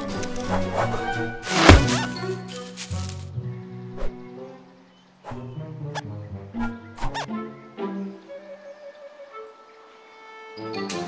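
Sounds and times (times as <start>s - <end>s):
orchestral music: 0.0s - 4.6s, 5.6s - 11.0s.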